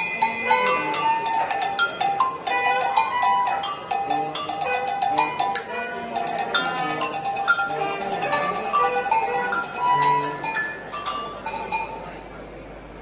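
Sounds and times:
bright pitched notes: 0:00.0 - 0:12.2.

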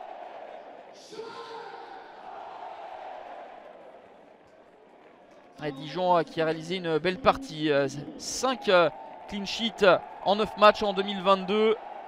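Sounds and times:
crowd shout: 0:00.0 - 0:04.2, 0:08.1 - 0:12.0
stadium crowd voices: 0:00.0 - 0:12.0.

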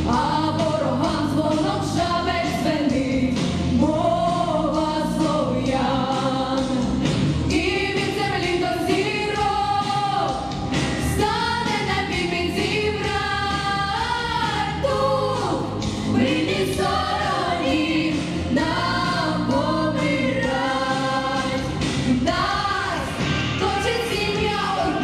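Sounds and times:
girls singing pop song: 0:00.0 - 0:25.0
instrumental backing track: 0:00.0 - 0:25.0.

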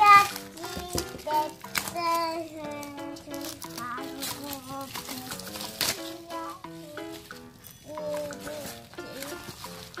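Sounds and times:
child singing: 0:00.0 - 0:09.6
music: 0:00.0 - 0:10.0.

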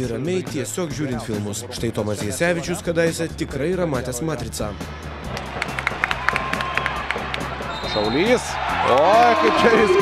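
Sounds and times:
background music: 0:00.0 - 0:10.0
crowd noise: 0:04.9 - 0:10.0
sneaker squeaks on court: 0:07.7 - 0:08.2.

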